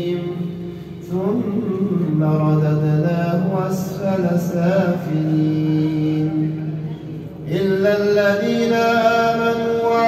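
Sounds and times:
man chanting: 0.0 - 6.9, 7.5 - 10.0.

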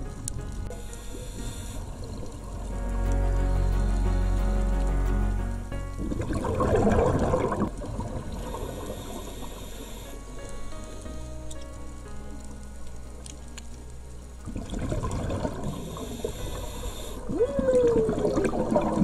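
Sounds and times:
background music with steady tones: 0.0 - 19.0
underwater breath bubbling: 6.0 - 10.2, 14.5 - 19.0.

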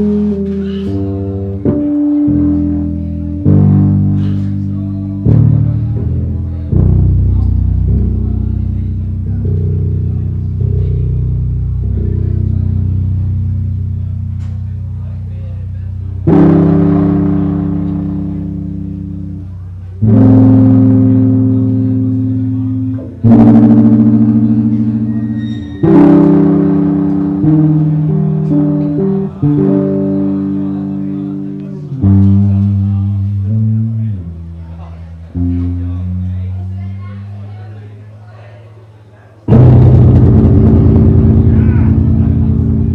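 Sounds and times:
electric bass guitar notes and chords: 0.0 - 37.7, 39.4 - 42.9.

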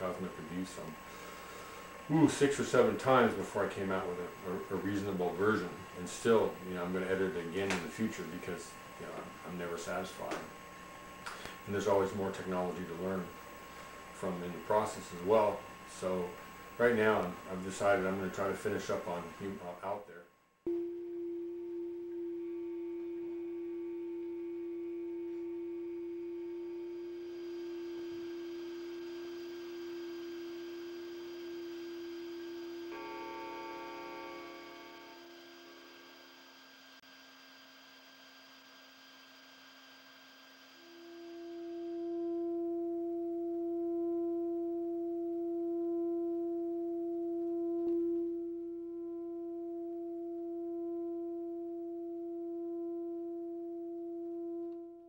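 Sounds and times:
electronic sine drone: 0.0 - 55.0
higher electronic tones: 20.7 - 37.0, 40.7 - 54.7.

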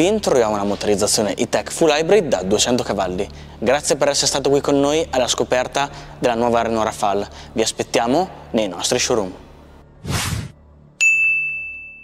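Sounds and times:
short whoosh: 10.0 - 10.6
bright ding: 11.0 - 12.0.

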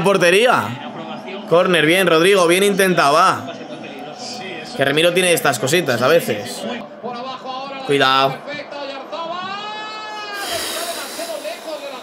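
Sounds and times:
puff of breath through lips: 10.4 - 12.0.

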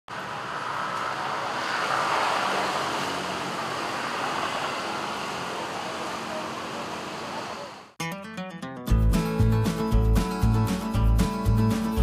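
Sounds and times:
road traffic rushing past: 0.1 - 8.0.

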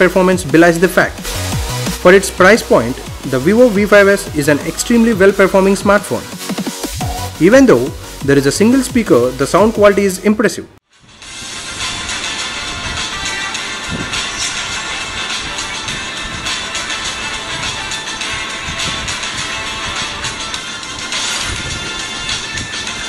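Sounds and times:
music with percussive beats: 0.4 - 2.1, 2.7 - 9.9.

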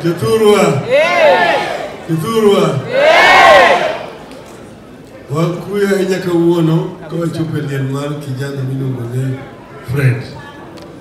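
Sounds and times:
crowd shouting in unison: 0.8 - 2.0, 2.8 - 4.2.

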